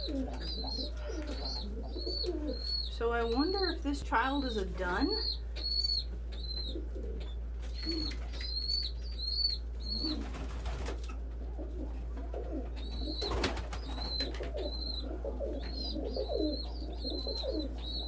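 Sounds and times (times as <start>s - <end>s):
pigeons cooing: 0.0s - 3.8s, 4.9s - 18.0s
pigeon squab begging peeps: 0.0s - 18.0s.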